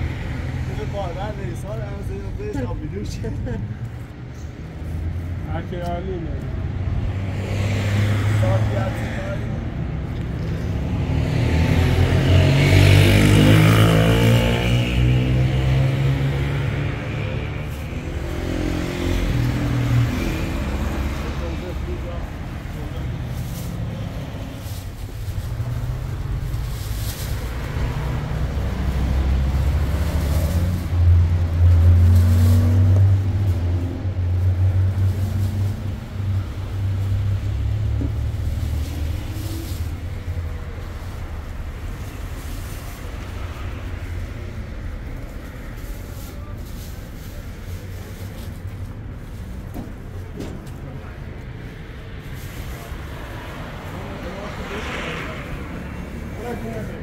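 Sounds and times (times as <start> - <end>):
traffic engine rumble: 0.0 - 57.0
vehicles passing: 0.0 - 57.0.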